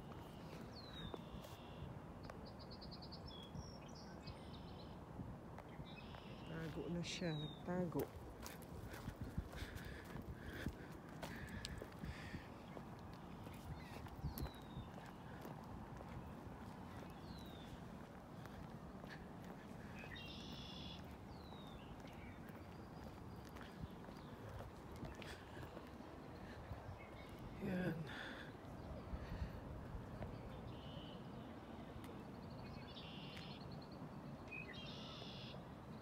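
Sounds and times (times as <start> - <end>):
bird chirping: 20.0 - 24.3, 32.4 - 35.6.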